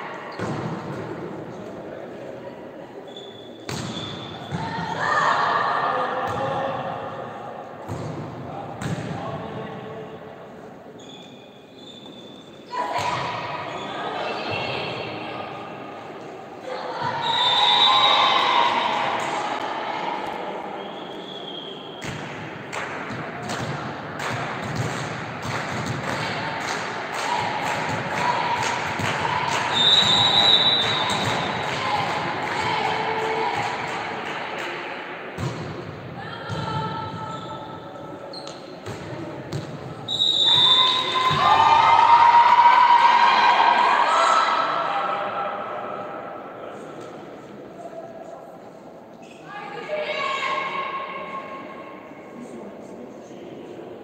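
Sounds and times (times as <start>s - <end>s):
ball hits: 3.7s - 4.1s
people shouting and cheering: 4.6s - 6.7s, 16.6s - 20.9s, 26.0s - 34.8s, 40.5s - 46.1s
steady whistle tone: 17.2s - 18.8s, 20.7s - 22.0s, 29.7s - 31.6s, 40.1s - 41.3s.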